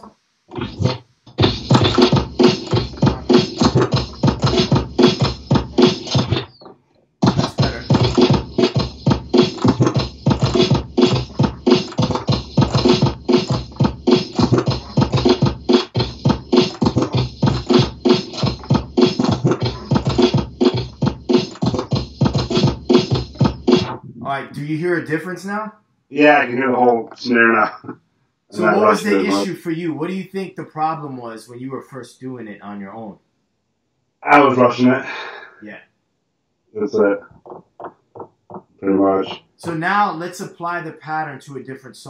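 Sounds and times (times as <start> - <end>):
drum break cut on turntables: 0.0 - 25.3, 28.5 - 30.2, 39.2 - 41.2.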